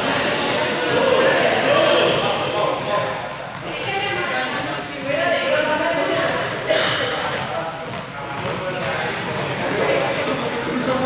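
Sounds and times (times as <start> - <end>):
young people calling and chattering: 0.0 - 11.0.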